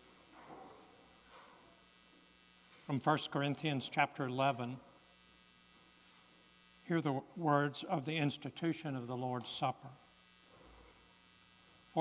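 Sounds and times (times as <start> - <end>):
electrical mains hum: 0.0 - 12.0
man speaking: 2.9 - 4.8, 6.9 - 10.0.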